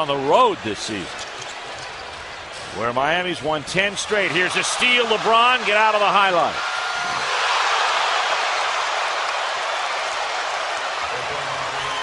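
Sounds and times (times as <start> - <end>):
arena crowd cheering: 0.0 - 12.0.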